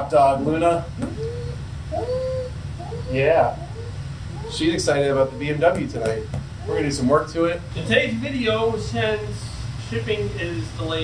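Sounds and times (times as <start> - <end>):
dog whining: 0.4 - 7.3.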